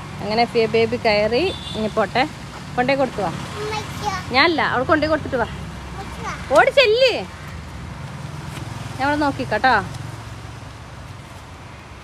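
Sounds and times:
woman's voice: 0.2 - 3.5, 4.3 - 5.6, 6.4 - 7.4, 9.0 - 10.0.

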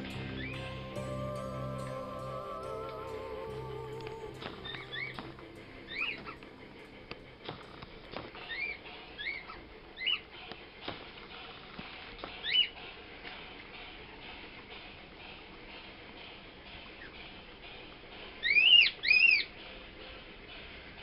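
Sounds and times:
small animal chirping: 8.4 - 10.3.

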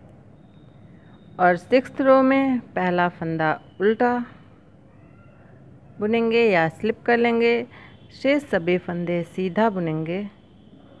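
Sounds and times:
low background noise: 0.0 - 11.0
woman speaking: 1.4 - 4.5, 6.0 - 10.4
faint high-pitched call: 3.6 - 6.0.

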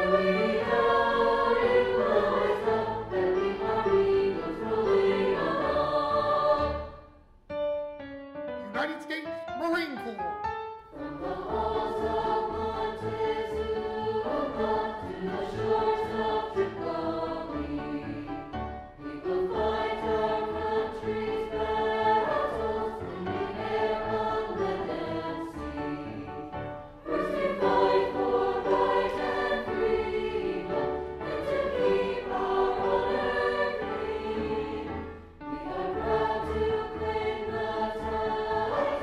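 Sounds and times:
choir singing: 0.0 - 7.2, 10.9 - 39.0.

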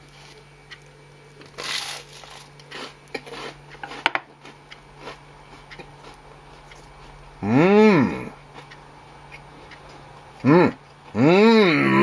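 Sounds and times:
toast crunching while chewed: 0.1 - 7.3, 8.4 - 10.2.

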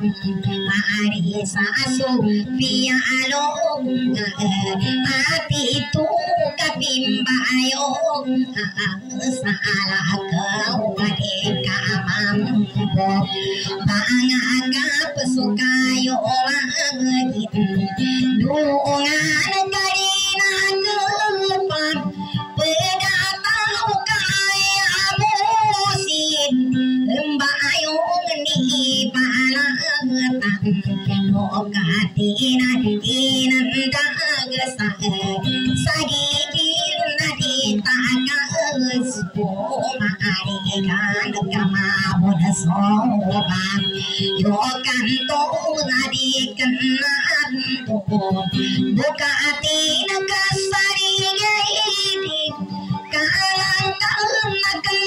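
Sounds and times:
acoustic guitar: 0.0 - 55.0
woman singing into microphone: 0.0 - 55.0
strummed acoustic guitar: 30.4 - 47.0.

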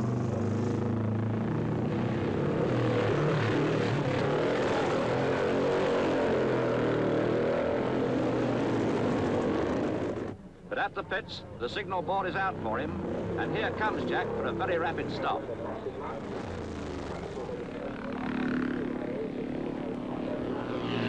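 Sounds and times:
motorcycle engine at high revs: 0.0 - 10.4, 12.6 - 21.0.

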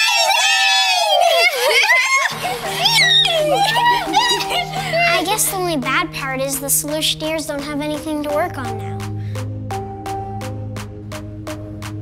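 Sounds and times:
girls screaming: 0.0 - 5.5.

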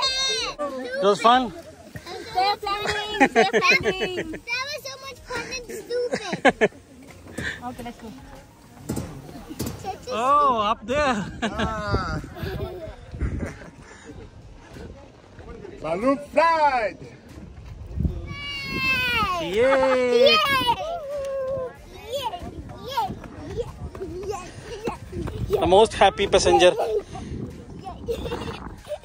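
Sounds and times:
outdoor background noise: 0.0 - 29.0
faint voices: 17.0 - 29.0.

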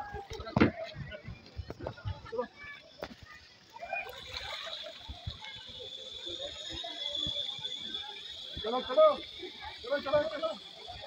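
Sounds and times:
indistinct voices: 0.0 - 11.0
steady high-pitched buzz: 2.5 - 11.0
water sloshing and splashing: 3.0 - 6.2.

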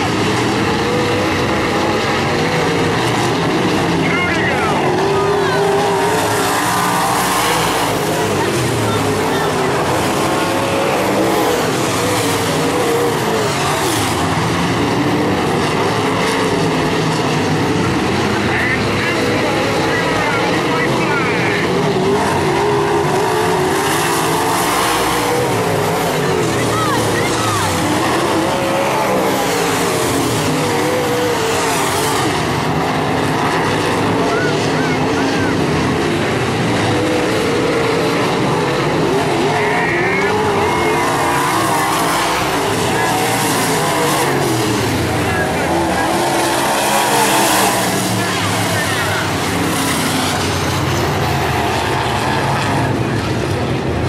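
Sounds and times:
race car engines passing: 0.0 - 54.0.

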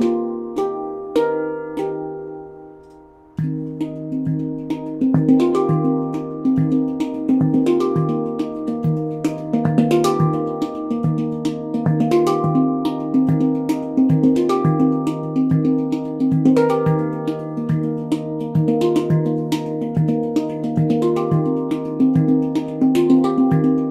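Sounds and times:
handpan rhythmic groove: 0.0 - 23.9.

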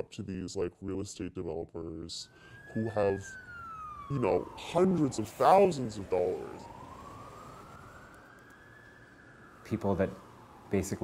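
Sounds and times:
low street hum: 0.0 - 11.0
emergency siren wailing: 1.8 - 11.0.

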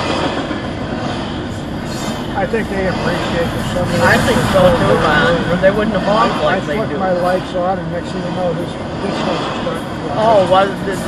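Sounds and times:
freight train wheels on rails: 0.0 - 11.0.

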